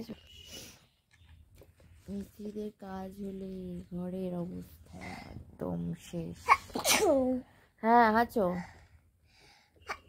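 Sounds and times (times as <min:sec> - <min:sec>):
woman speaking: 0:00.0 - 0:00.2, 0:02.1 - 0:06.5, 0:07.2 - 0:08.7
woman sneezing: 0:06.5 - 0:07.2.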